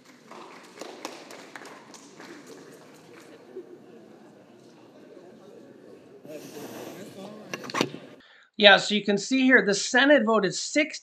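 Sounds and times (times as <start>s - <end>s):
murmur of many voices: 1.9s - 8.2s.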